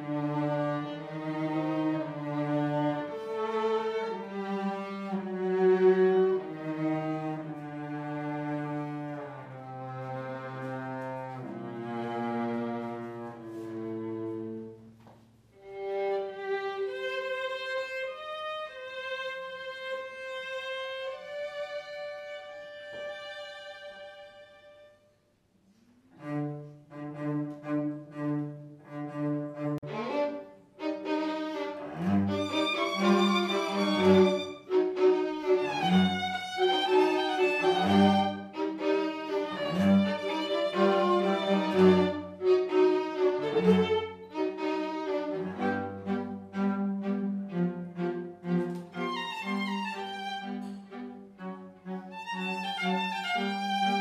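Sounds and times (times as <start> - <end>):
violin long bowed note: 0.0 - 14.8, 26.2 - 54.0
low cello line: 0.0 - 54.0
string quartet playing slowly: 0.0 - 54.0.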